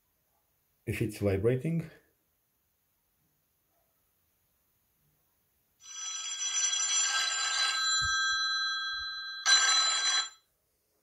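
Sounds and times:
smartphone ringtone: 5.8s - 10.5s.

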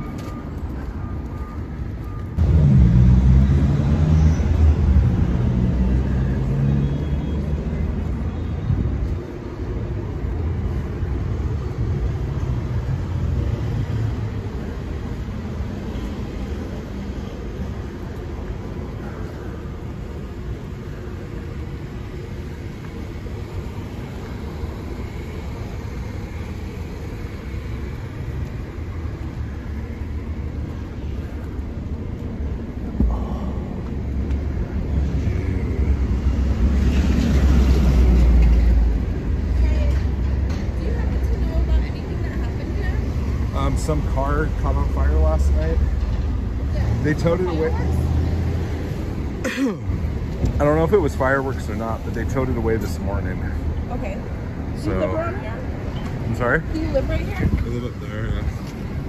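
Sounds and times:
low rumble of passing traffic: 0.0s - 59.0s.

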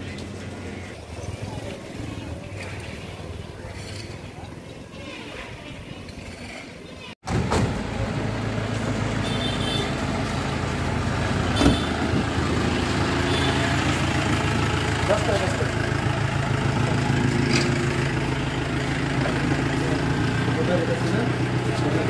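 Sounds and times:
thump: 7.3s - 7.8s
vehicle engine idling: 7.3s - 22.0s.

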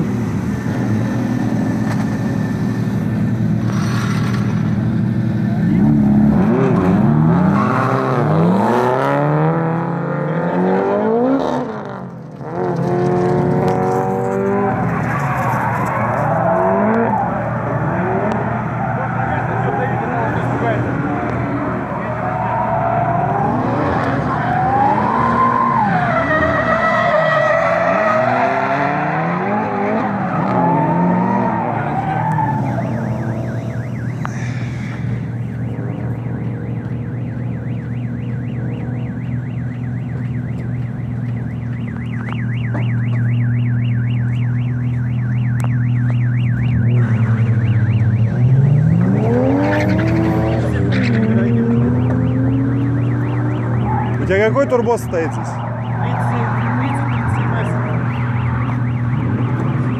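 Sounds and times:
car engines revving: 0.0s - 59.9s
tyres skidding: 0.0s - 59.9s.

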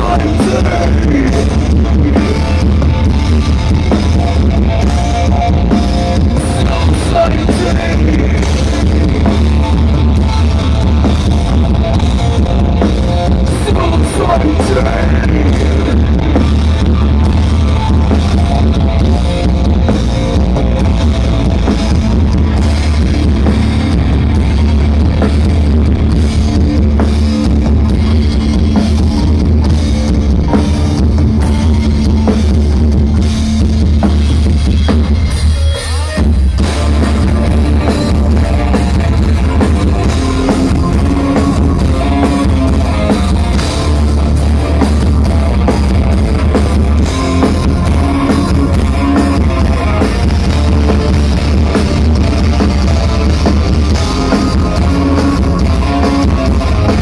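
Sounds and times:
live rock band playing: 0.0s - 57.0s.

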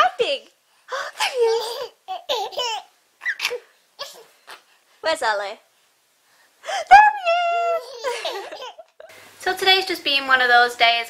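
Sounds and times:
baby laughing: 1.1s - 4.6s, 7.2s - 9.1s.

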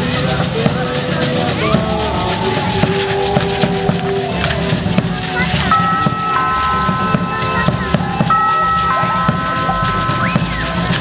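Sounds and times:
high held melody notes: 0.0s - 11.0s
steady drum beat: 0.0s - 11.0s.

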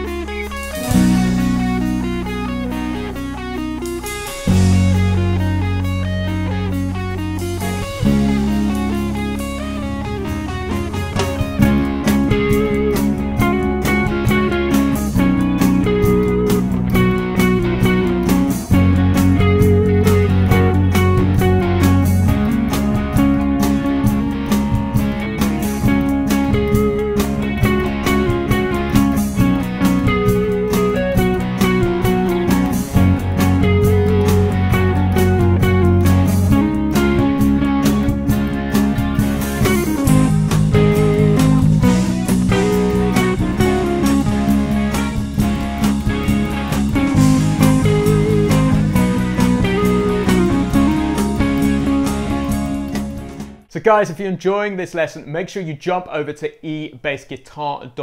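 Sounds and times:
electric bass guitar: 0.0s - 53.7s
electric guitar: 0.0s - 53.7s
drums: 0.0s - 54.2s.

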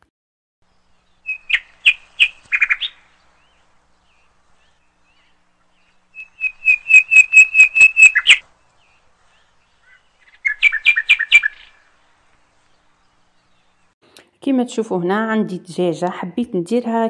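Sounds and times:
bird chirping: 0.6s - 14.0s.

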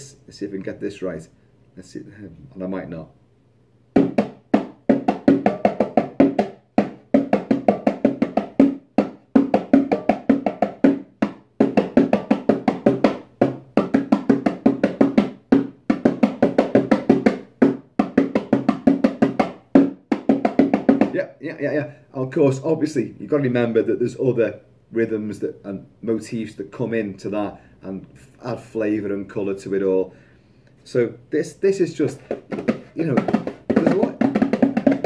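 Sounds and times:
bongos played by hand: 3.9s - 21.2s, 32.1s - 35.0s.

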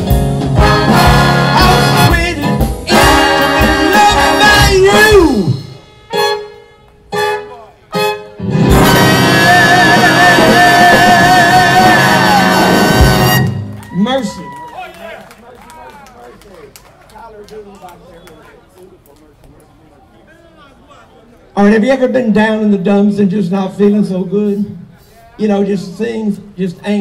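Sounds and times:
brass jazz band playing: 0.0s - 13.9s
crowd chatter: 2.9s - 27.0s.

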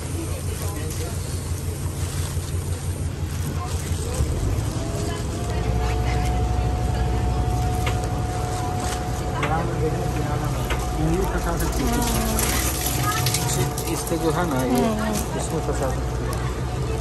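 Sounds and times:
boat motor rumbling with whine: 0.0s - 17.0s
voices talking: 0.0s - 17.0s
water noise: 0.0s - 17.0s.

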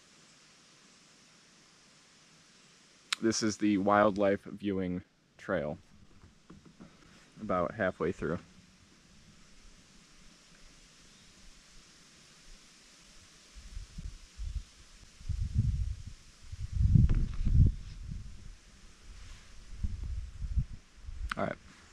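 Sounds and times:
low rumbles and thumps on microphone: 5.8s - 7.4s, 15.2s - 21.3s.

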